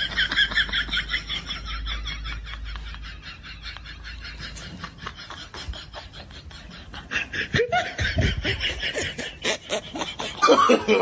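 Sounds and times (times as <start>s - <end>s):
person laughing: 0.0s - 11.0s.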